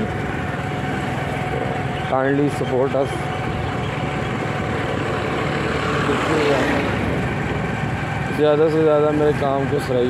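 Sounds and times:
motorcycle engine running: 0.0s - 10.0s
wind rushing over microphone: 3.1s - 8.8s.

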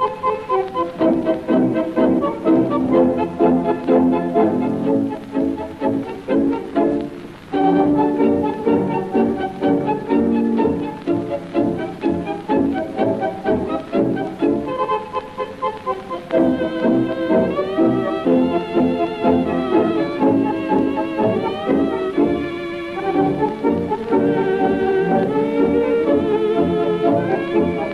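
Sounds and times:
tango orchestra with violins: 0.0s - 27.9s.

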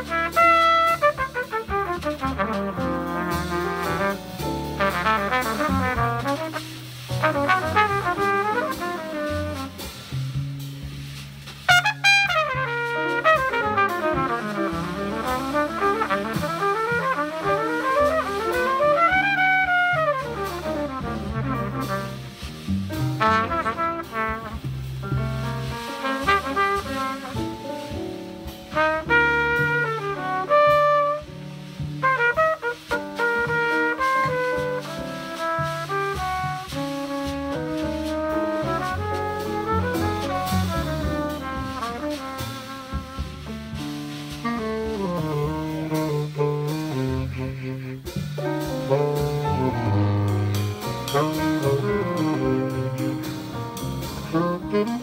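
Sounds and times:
trumpet soloing: 0.0s - 10.3s, 11.6s - 55.0s
upright bass: 0.0s - 55.0s.

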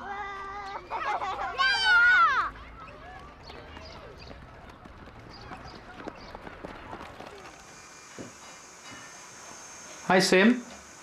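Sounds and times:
faint children's voices: 0.0s - 7.7s
running footsteps on tarmac: 2.5s - 8.4s.

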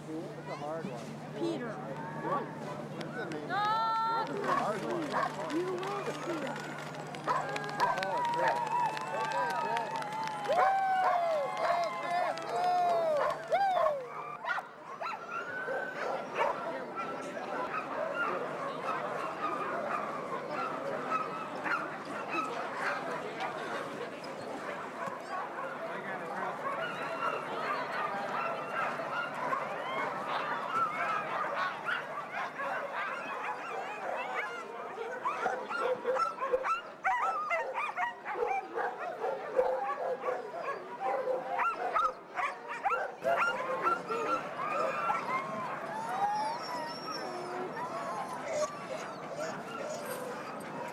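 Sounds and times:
sled dogs barking and yipping: 2.1s - 50.9s.

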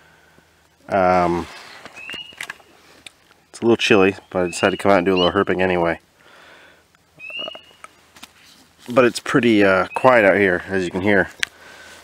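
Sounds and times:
soft hiss: 0.0s - 12.0s
spring peeper frog peep: 4.2s - 5.5s, 7.2s - 7.9s.

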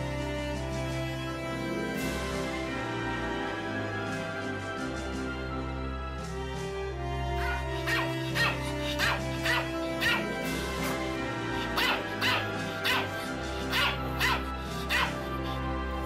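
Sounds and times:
background music with held notes: 0.0s - 16.0s
dog barking: 7.4s - 11.0s, 11.6s - 15.6s.

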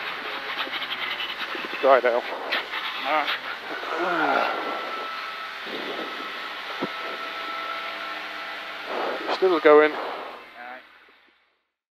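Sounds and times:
rally car engine: 0.0s - 10.7s
tyres on gravel road: 0.0s - 11.4s.

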